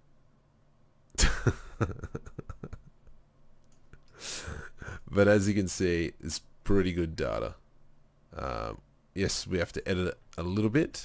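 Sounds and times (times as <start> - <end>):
person laughing: 1.2 - 3.1.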